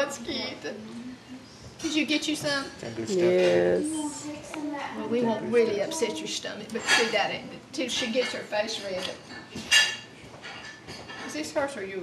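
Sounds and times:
tableware clink: 6.8 - 7.3, 7.9 - 11.4.

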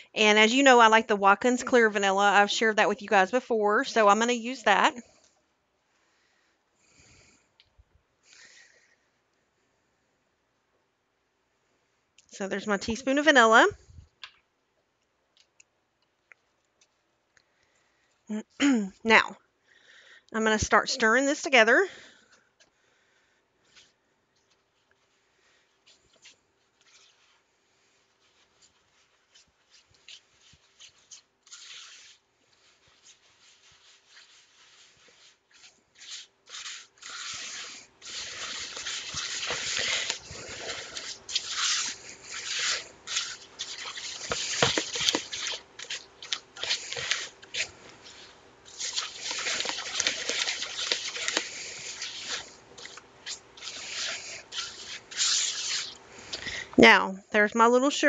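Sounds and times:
spatula scraping a mixing bowl: 28.3 - 56.7.

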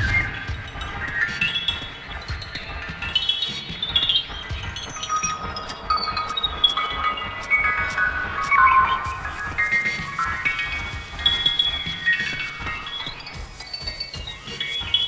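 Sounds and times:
ambient electronic music: 0.0 - 15.0.

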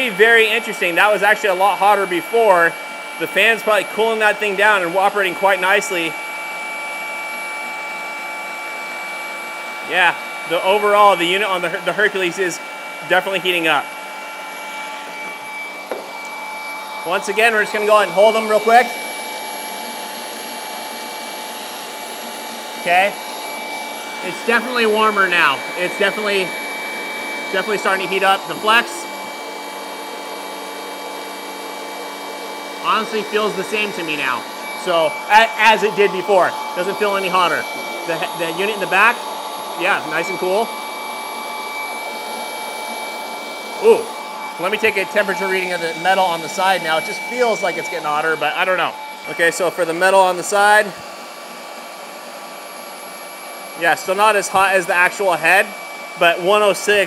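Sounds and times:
rotary polishers whirring: 0.0 - 57.0
small knock: 15.9 - 16.1.

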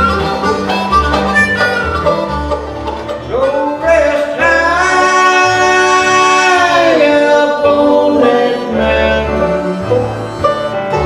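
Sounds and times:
upright bass notes: 0.0 - 11.0
long held lead note: 1.3 - 2.3.

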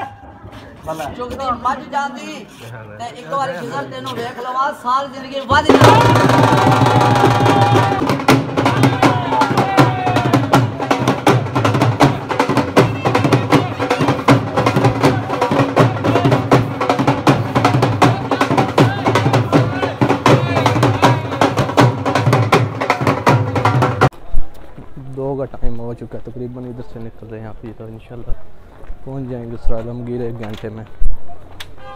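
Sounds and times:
fast loud drumming: 5.5 - 24.1.

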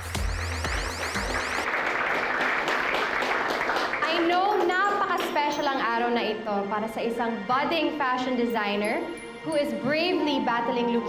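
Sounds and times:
electronic dance music: 0.0 - 1.7
audience applause: 0.0 - 5.0.

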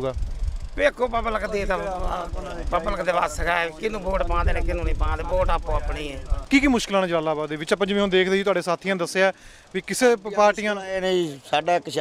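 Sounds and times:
low rumble: 0.0 - 7.4
men talking: 0.0 - 12.0.

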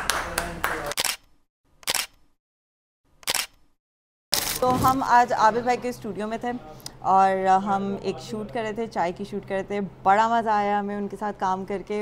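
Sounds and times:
camera shutter clicking: 0.9 - 2.2, 3.2 - 3.6.

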